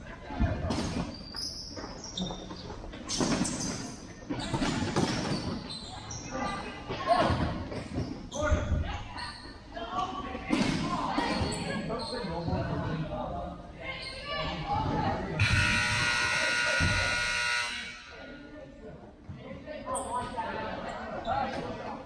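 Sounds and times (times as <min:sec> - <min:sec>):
shoe squeaks: 0:00.9 - 0:06.8, 0:11.3 - 0:12.5, 0:13.9 - 0:14.5
scoreboard buzzer: 0:15.4 - 0:18.1.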